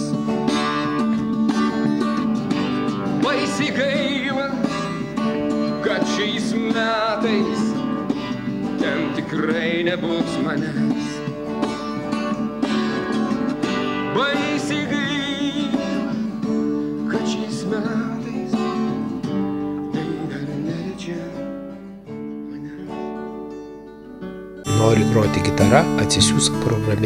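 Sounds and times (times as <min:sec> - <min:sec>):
person singing: 0:00.0 - 0:23.6, 0:24.7 - 0:27.0
fingerpicked classical guitar: 0:00.0 - 0:27.0.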